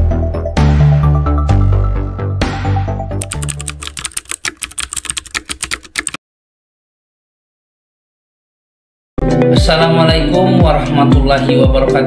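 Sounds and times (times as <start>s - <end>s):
rapid keyboard key clicks: 3.2s - 6.2s.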